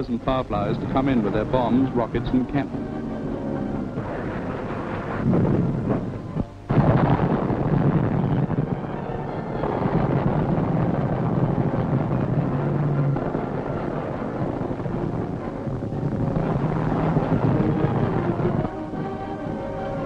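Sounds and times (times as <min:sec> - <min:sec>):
propeller aircraft engines droning: 0:00.0 - 0:20.0.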